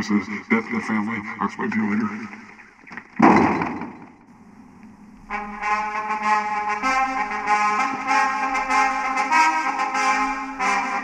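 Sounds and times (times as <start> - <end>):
door slamming: 3.2 - 4.1.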